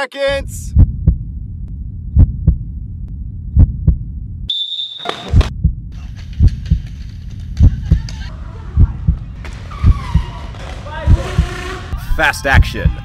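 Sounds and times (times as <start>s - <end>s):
heartbeat thumps: 0.7s - 4.4s, 5.4s - 10.3s, 11.0s - 11.6s, 12.6s - 13.0s
low hum: 0.7s - 4.5s
shrill whistle blast: 4.5s - 5.3s.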